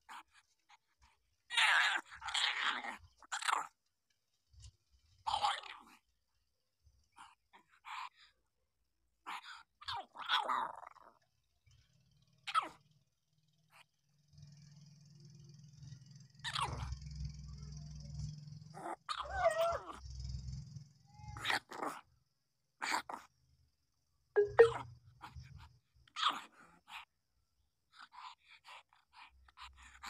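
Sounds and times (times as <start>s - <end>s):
puppies whimpering and squeaking: 19.1s - 20.0s, 24.4s - 24.8s.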